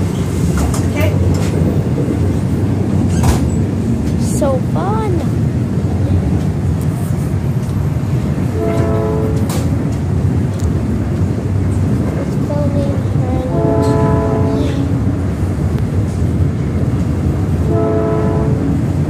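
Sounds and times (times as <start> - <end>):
rail clicks: 0.0 - 17.8
train car rumbling on track: 0.0 - 19.0.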